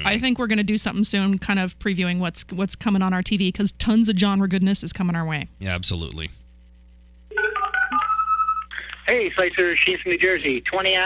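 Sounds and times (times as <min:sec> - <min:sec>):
caller's voice over phone line: 0:09.1 - 0:11.0.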